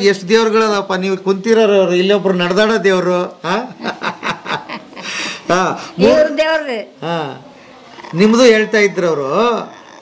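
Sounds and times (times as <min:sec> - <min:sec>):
elderly woman chuckling: 0:03.7 - 0:05.5
woman speaking: 0:06.0 - 0:08.1.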